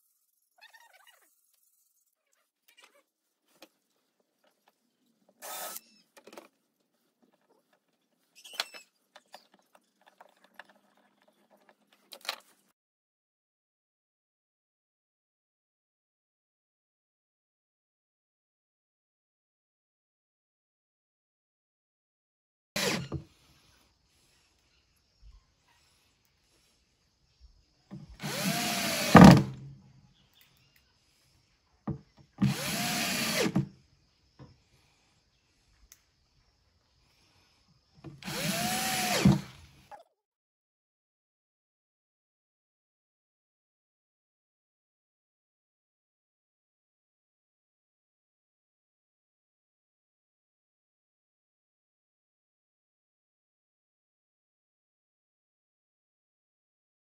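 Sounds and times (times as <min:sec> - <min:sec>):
cordless drill whining: 0:05.4 - 0:06.0, 0:22.8 - 0:23.4, 0:28.0 - 0:29.6, 0:32.4 - 0:33.7, 0:38.1 - 0:39.7.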